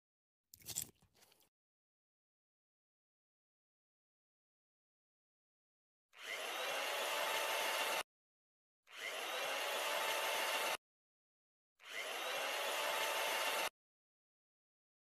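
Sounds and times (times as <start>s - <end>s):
chainsaw whirring: 6.2s - 8.0s, 8.9s - 10.8s, 11.8s - 13.7s.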